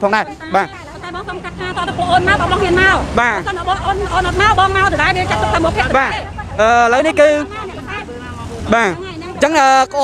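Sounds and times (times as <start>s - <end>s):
roadside traffic rumble: 0.0s - 10.0s
man talking: 5.9s - 7.5s, 8.1s - 10.0s.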